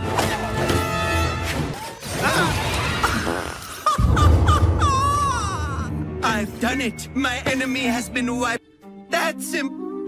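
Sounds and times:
high warbling cartoon cry: 2.2s - 5.9s.

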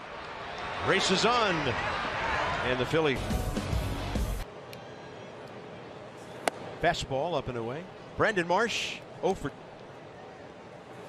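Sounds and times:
stadium ambience: 0.0s - 11.0s.

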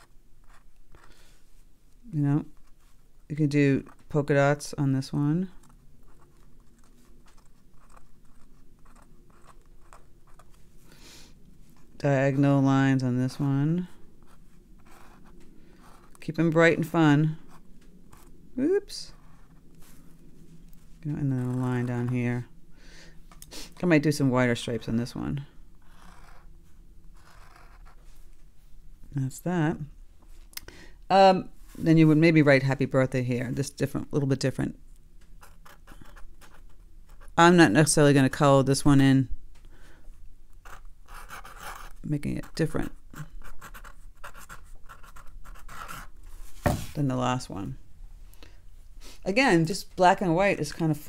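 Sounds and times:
marker scratching on paper: 25.9s - 26.4s, 27.2s - 28.1s, 40.6s - 46.1s.

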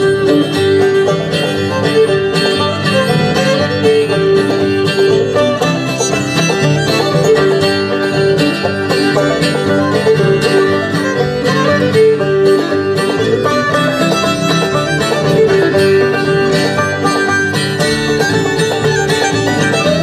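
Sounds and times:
acoustic guitar: 0.0s - 20.0s
banjo: 0.0s - 20.0s
upright bass: 0.0s - 20.0s.

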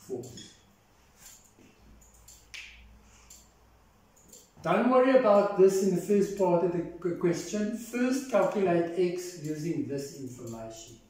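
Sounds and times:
sharp clicks and taps: 1.3s - 3.5s.

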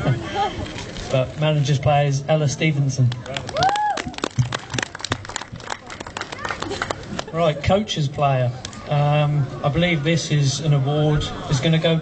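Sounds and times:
scattered applause: 3.0s - 7.4s.

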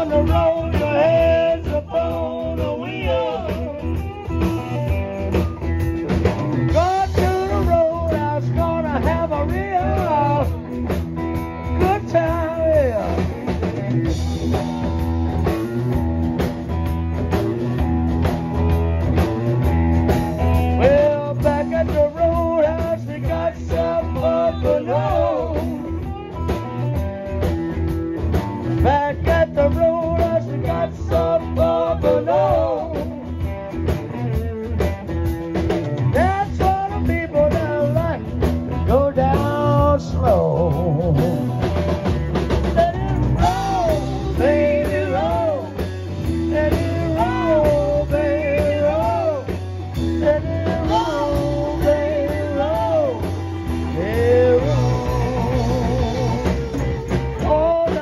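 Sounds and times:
bass line: 0.0s - 58.0s
blues-rock band playing: 0.0s - 58.0s
drum kit: 0.0s - 58.0s
electric guitar lead lines: 0.0s - 58.0s.

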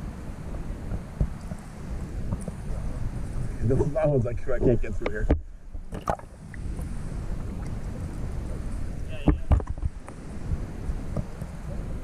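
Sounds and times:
muffled underwater rumble: 0.0s - 12.0s
water sloshing: 1.2s - 10.1s.

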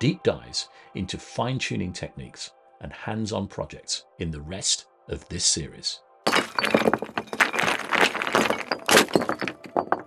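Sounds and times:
hard fragments breaking and clattering: 6.3s - 10.0s.

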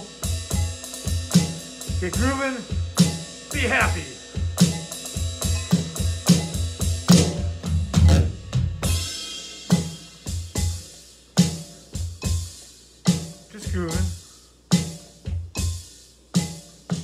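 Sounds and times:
electronic drum kit: 0.0s - 17.0s.

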